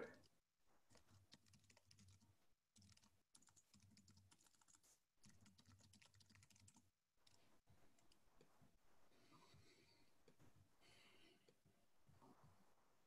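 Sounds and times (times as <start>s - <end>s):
faint keyboard typing clicks: 0.1s - 7.4s.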